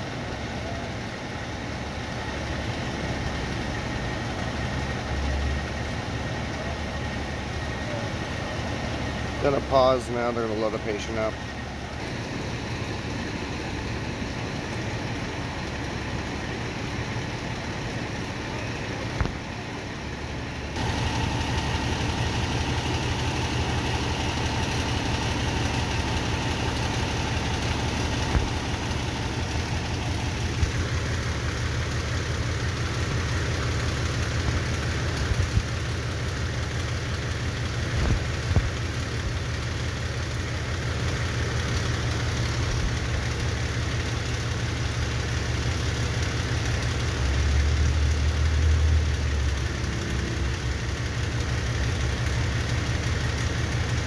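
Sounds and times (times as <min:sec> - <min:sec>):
diesel engine idling: 0:00.0 - 0:54.0.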